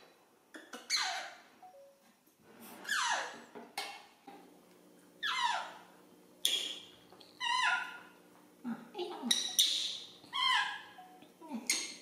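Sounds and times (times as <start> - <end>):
baby monkey squealing: 0.9 - 1.4, 5.2 - 5.8, 7.4 - 8.0, 9.3 - 11.0.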